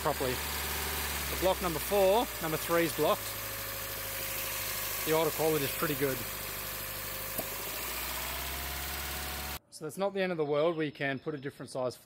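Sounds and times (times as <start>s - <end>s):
car engine idling: 0.0s - 9.6s.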